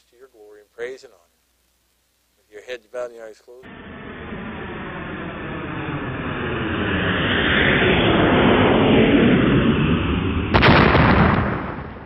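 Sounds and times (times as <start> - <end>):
boom-like hit: 3.7 - 12.0
rumbling whoosh: 3.7 - 12.0.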